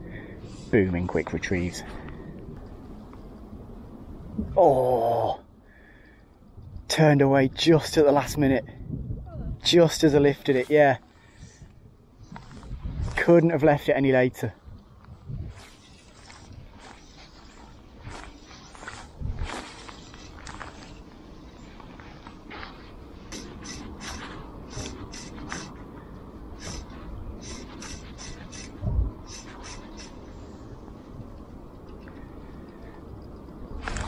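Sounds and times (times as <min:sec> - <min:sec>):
wind buffeting microphone: 0:01.4 - 0:04.6, 0:06.4 - 0:10.4, 0:11.2 - 0:34.0
fly line scraping through rod rings: 0:15.5 - 0:21.7, 0:22.5 - 0:25.8, 0:26.6 - 0:30.3.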